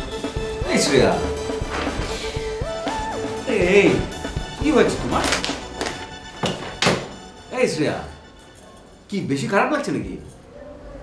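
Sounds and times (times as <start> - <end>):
background music: 0.0 - 10.4.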